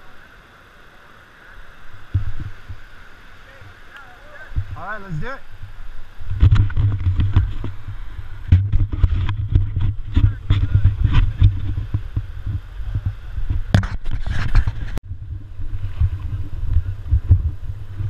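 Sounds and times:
wind buffeting microphone: 1.8s - 18.0s.

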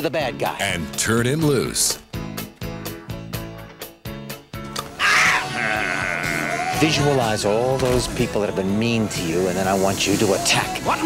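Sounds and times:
person yelling: 5.0s - 7.2s.

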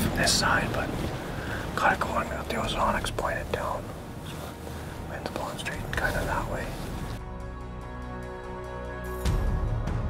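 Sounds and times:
man whispering: 0.0s - 7.0s.

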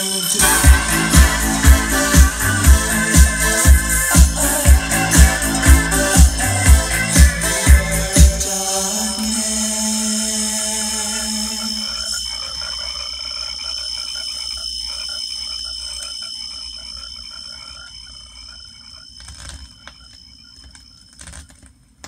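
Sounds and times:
rapid pulsing synth: 0.0s - 20.4s
steady high synth tones: 0.0s - 21.4s.

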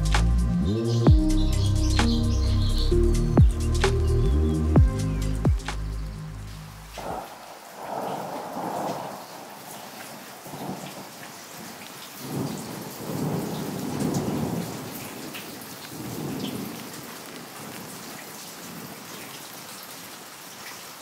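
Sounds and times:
steady rain: 0.0s - 21.0s
distant thunder rumbling: 4.8s - 17.9s.

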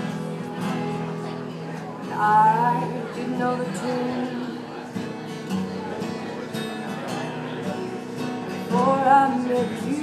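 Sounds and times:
strummed guitar: 0.0s - 10.0s.

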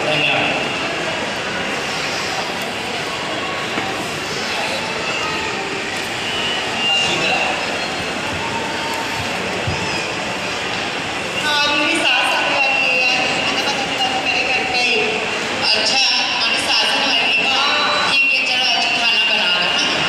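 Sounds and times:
echoing hubbub in a hall: 0.0s - 20.0s.

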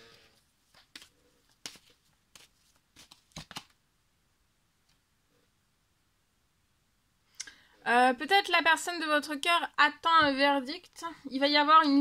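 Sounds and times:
cards being shuffled: 0.7s - 3.8s.

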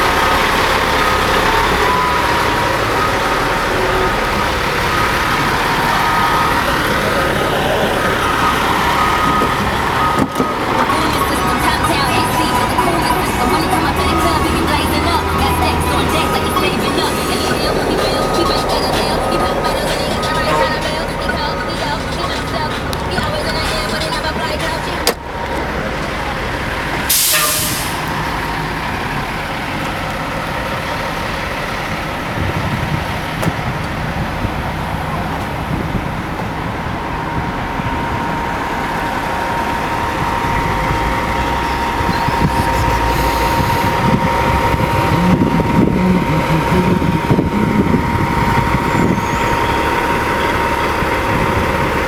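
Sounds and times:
car engine running: 0.0s - 27.1s, 33.6s - 52.0s
street noise: 0.0s - 52.0s.

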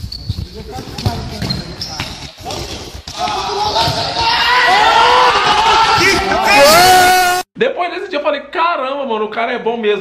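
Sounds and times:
ball bouncing and kicked: 0.0s - 4.4s
players' voices: 0.3s - 7.9s.

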